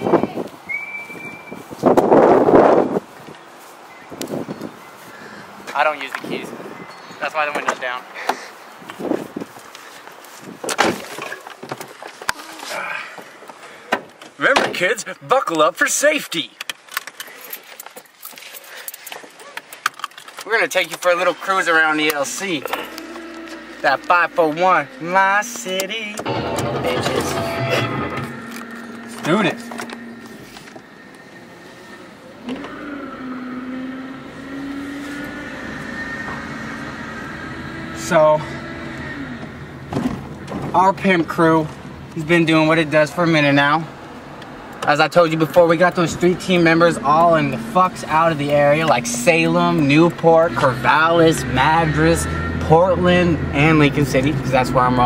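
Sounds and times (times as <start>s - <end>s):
car engine accelerating: 21.2s - 42.2s, 44.5s - 55.0s.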